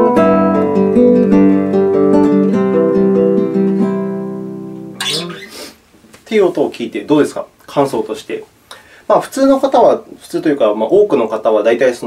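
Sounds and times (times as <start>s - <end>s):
classical guitar fingerpicked: 0.0s - 5.5s.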